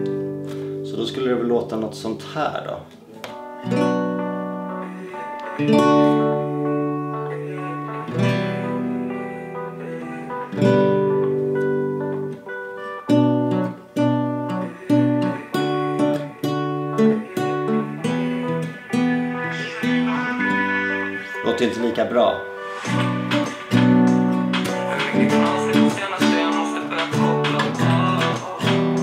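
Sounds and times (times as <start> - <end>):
acoustic guitar strumming chords: 0.0 - 29.0.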